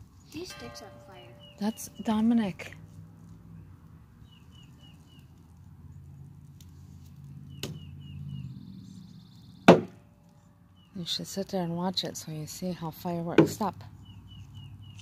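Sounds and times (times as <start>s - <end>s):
bird chirping: 0.3s - 2.7s.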